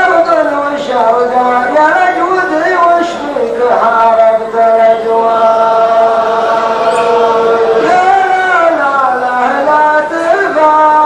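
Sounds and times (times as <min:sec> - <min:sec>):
man singing long note: 0:04.9 - 0:08.8.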